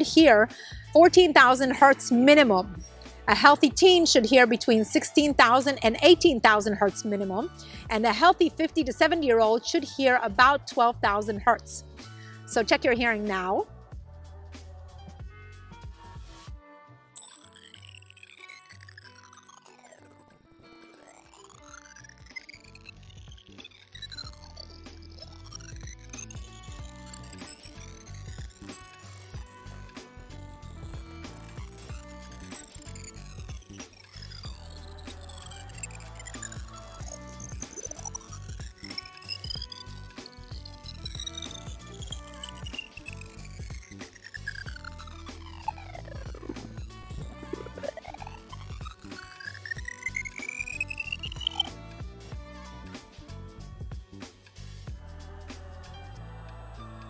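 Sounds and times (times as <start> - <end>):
rising test tone sweep: 17.2 - 52.0.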